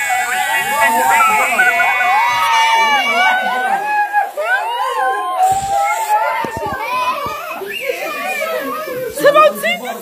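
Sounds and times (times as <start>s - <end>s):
young people shouting and chattering: 0.0s - 10.0s.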